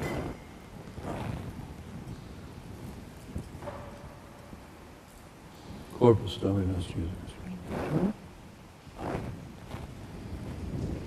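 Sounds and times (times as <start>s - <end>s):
footsteps on stone floor: 0.0s - 2.1s.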